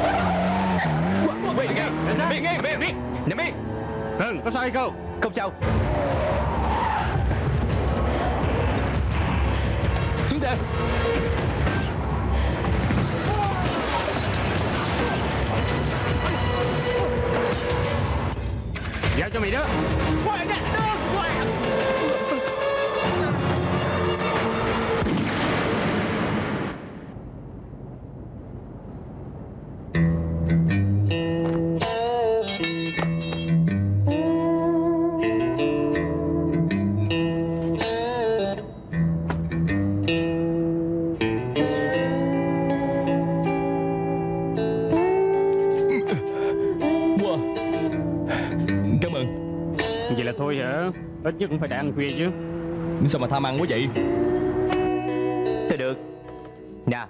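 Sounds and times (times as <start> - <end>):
tyres screeching: 0.0 - 2.8, 13.2 - 15.5
dramatic background music: 3.1 - 26.5
people shouting: 13.2 - 14.1
gunshot bang: 24.4 - 26.8.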